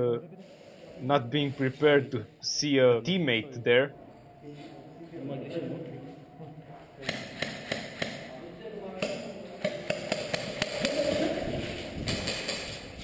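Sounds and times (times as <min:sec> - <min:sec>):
sharp clicks and knocks: 0:07.0 - 0:08.3.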